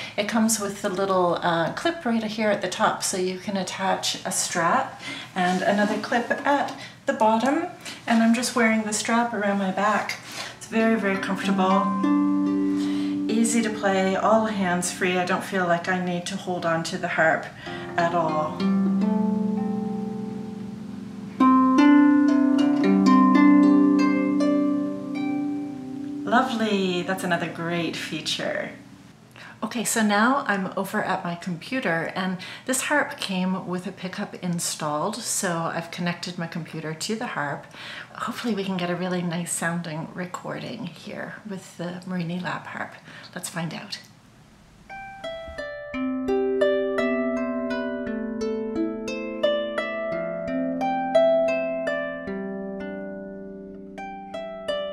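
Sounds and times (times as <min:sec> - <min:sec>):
plucked harp notes: 0:10.9 - 0:15.4, 0:17.6 - 0:29.0, 0:44.9 - 0:54.9.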